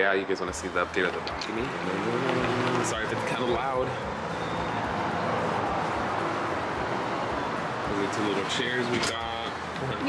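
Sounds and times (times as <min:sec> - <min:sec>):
loud road traffic rushing: 0:00.0 - 0:10.0.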